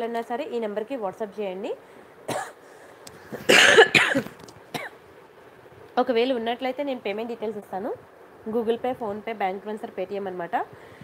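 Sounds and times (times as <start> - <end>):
person coughing: 2.3 - 2.6, 3.5 - 5.0.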